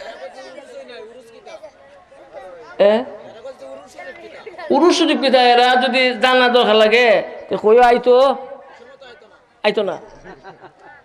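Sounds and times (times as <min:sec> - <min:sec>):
chatter of voices: 0:00.0 - 0:06.5, 0:07.4 - 0:11.0
amplified speech: 0:00.0 - 0:10.1.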